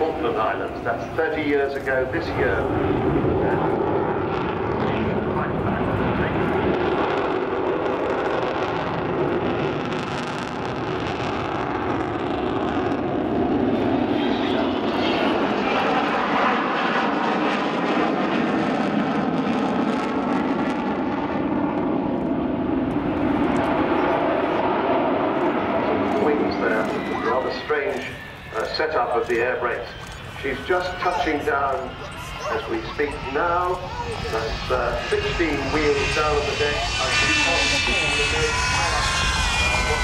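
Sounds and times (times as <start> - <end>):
high jet whine: 0.0 - 40.0
jet engines roaring in flyby: 0.0 - 40.0.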